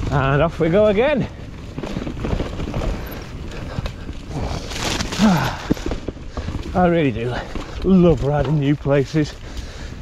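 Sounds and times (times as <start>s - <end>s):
bike rattling knocks and clicks: 0.0s - 10.0s
bike tyres rolling over dirt: 0.0s - 10.0s
rider grunting: 2.8s - 6.0s.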